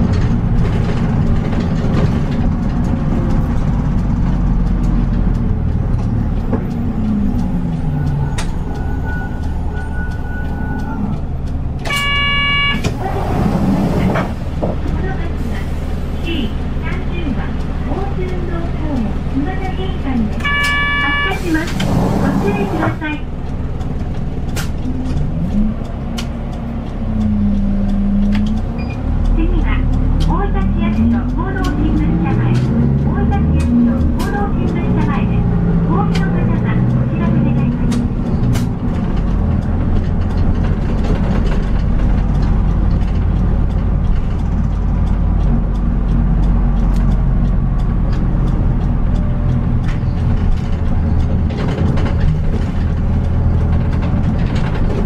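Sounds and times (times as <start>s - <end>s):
bus engine running: 0.0s - 55.0s.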